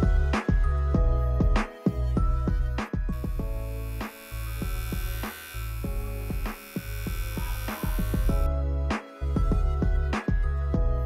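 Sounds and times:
background music: 0.0 - 11.0
pet hair clipper buzzing: 3.1 - 8.5.

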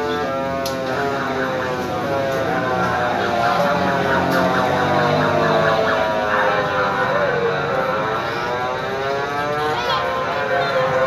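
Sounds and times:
electronic carousel music: 0.0 - 11.0.

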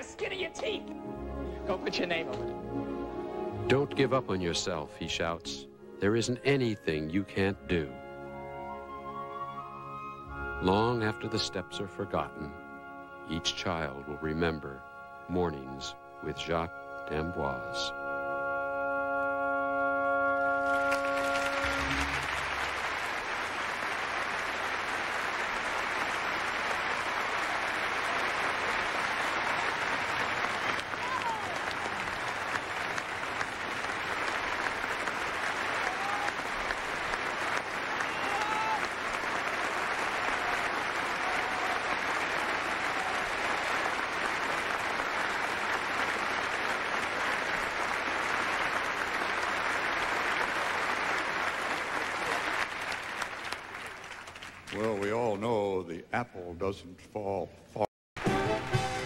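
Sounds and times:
audience applauding: 20.6 - 55.4.

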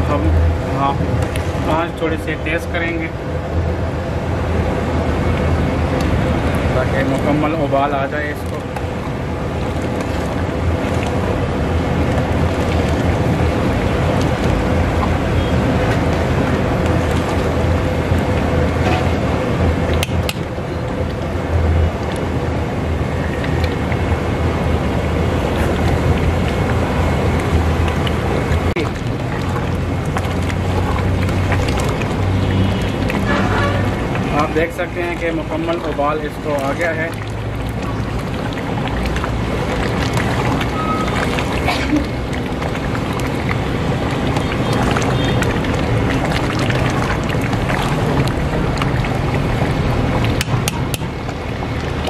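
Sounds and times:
curry bubbling at a boil: 0.0 - 52.0.

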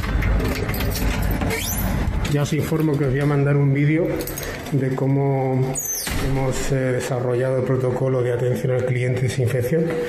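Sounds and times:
door squeak: 0.6 - 2.3, 5.7 - 6.3.

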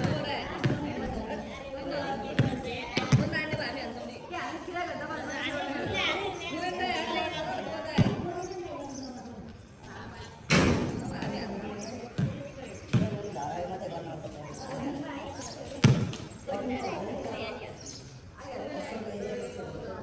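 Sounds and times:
basketball bouncing on pavement: 0.0 - 1.4, 2.1 - 4.0, 11.0 - 13.4, 15.6 - 16.4.

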